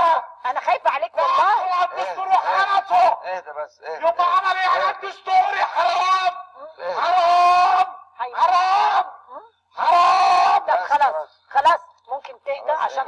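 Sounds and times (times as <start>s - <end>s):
man shouting: 1.2s - 3.2s, 3.9s - 11.2s.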